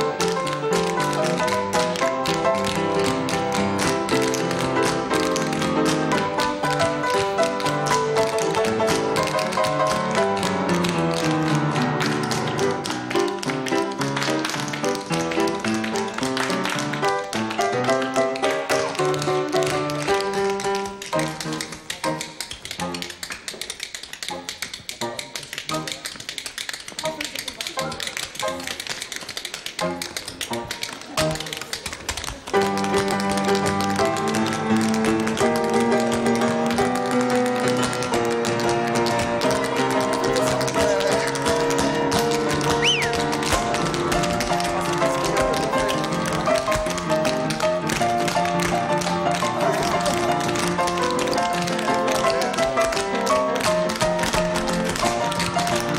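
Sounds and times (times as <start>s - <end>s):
music accompaniment: 0.0s - 55.9s
tap shoes clattering: 0.0s - 55.9s.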